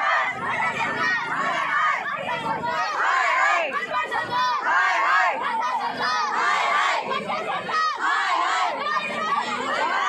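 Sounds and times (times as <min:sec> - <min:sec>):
children shouting: 0:00.0 - 0:10.0.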